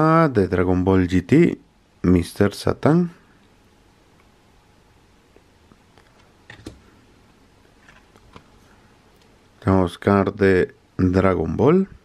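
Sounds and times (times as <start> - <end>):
handling plastic cards: 7.7 - 8.6.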